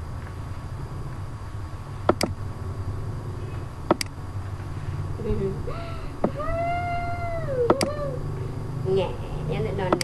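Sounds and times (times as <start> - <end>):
mouse clicks: 2.1 - 2.4, 3.9 - 4.1.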